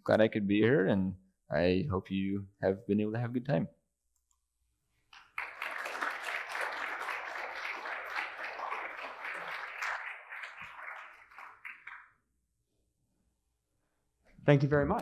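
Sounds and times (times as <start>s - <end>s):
audience applauding: 5.1s - 12.2s.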